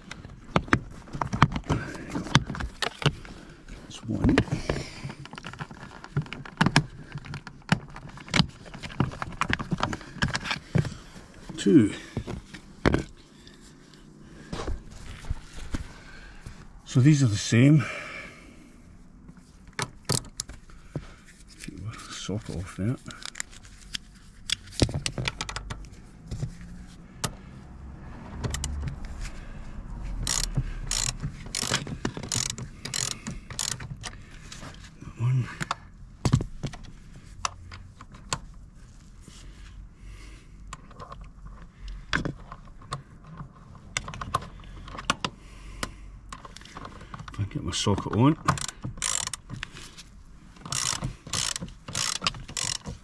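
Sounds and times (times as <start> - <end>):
socket ratchet clicking: 30.2 - 34.2, 48.4 - 49.7, 50.6 - 53.0.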